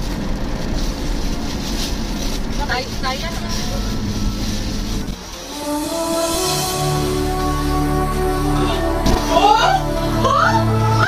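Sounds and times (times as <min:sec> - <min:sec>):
music: 0:02.0 - 0:11.0.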